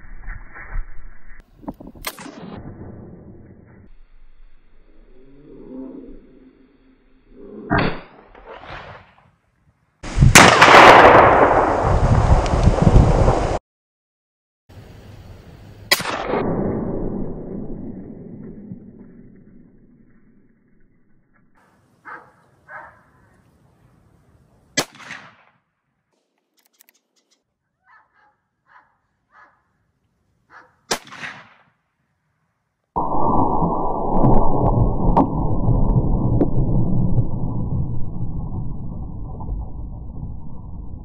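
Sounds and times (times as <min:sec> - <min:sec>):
rifle shot with rolling echo: 0:10.3 - 0:12.0, 0:24.8 - 0:25.5, 0:30.9 - 0:31.7.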